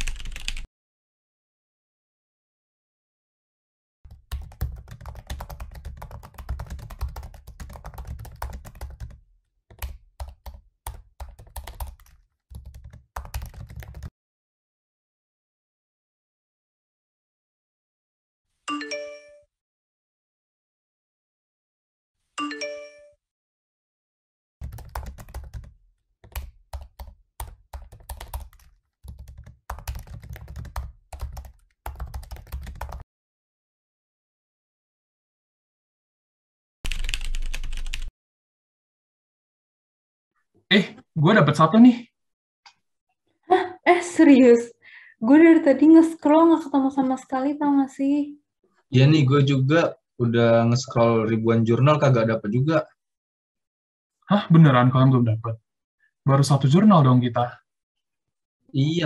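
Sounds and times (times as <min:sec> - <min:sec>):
typing on keyboard: 0:00.0 - 0:00.7, 0:04.1 - 0:14.1, 0:24.6 - 0:33.0, 0:36.9 - 0:38.1.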